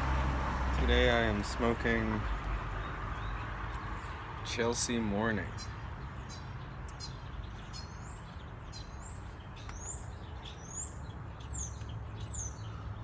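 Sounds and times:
songbird chirping: 0.0 - 13.0.

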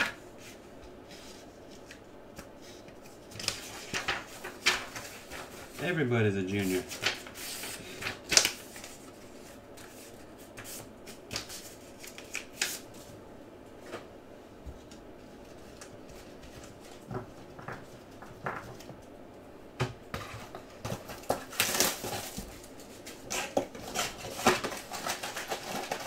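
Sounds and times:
cards rustling and sliding: 6.5 - 13.1.

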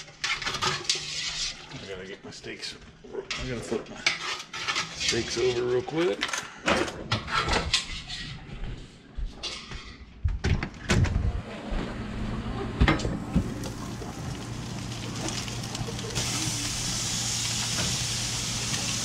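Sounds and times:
gas grill hum and hiss: 11.6 - 19.0.

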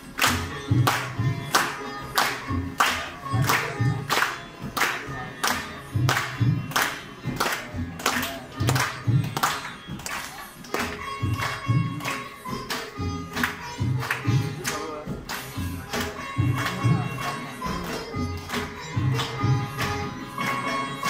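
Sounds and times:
sitar plucked notes: 0.0 - 21.0
tabla strokes: 0.0 - 21.0.

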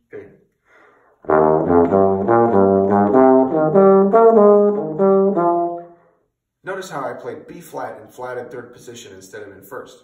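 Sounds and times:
bass trombone playing fast line: 1.2 - 5.9.

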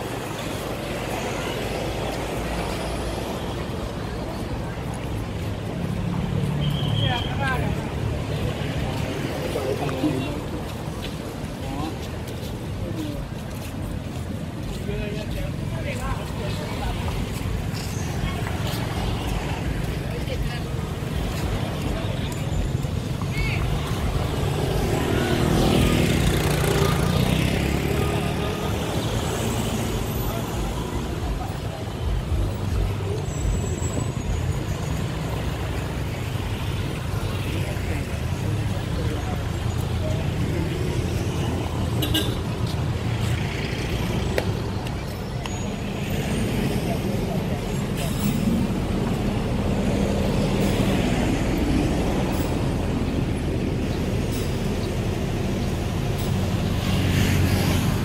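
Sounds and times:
steady traffic hum: 0.0 - 58.0.

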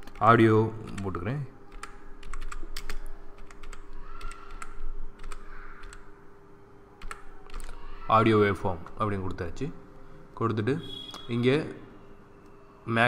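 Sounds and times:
keyboard typing: 0.0 - 6.2, 7.0 - 7.8.

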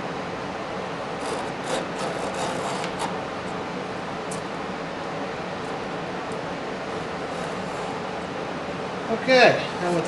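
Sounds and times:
hand tool scraping wood: 1.2 - 3.2.

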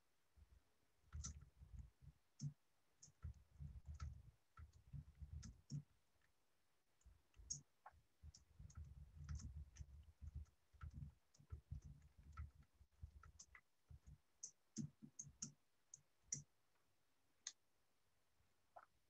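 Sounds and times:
faint irregular clicks: 0.4 - 17.7.

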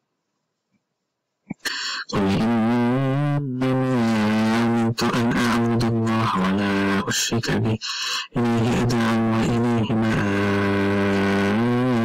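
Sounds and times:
man chanting a long vowel: 1.7 - 12.0.

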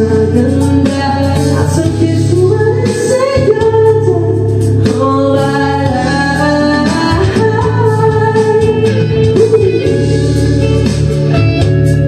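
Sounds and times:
backing track music: 0.0 - 12.0.

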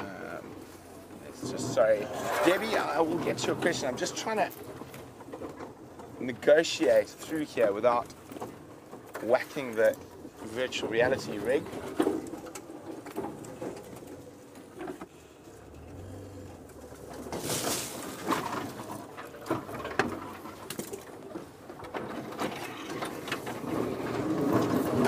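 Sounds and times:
branches cracking and scraping: 0.4 - 25.0
vehicle moving through bush: 13.3 - 20.5.

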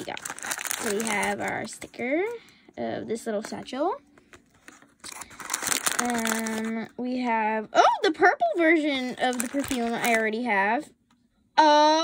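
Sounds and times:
plastic wrapping crinkling: 0.0 - 2.4, 4.3 - 6.9, 9.0 - 10.4.

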